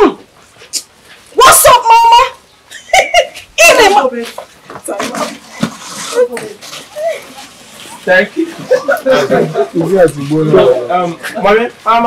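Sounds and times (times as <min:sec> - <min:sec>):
people chattering: 0:01.4 - 0:12.0
people laughing: 0:02.7 - 0:04.1, 0:07.9 - 0:11.7.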